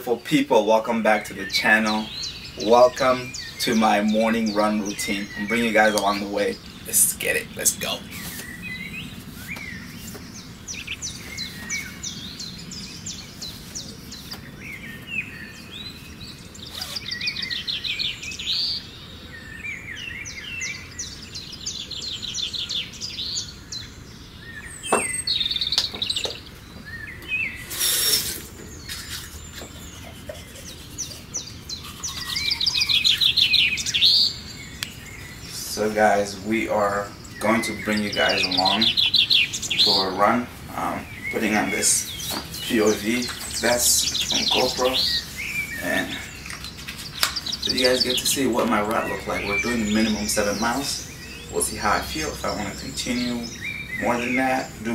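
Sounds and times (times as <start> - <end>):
songbirds chirping and trilling: 0.0 - 54.9
background hiss: 24.8 - 54.9.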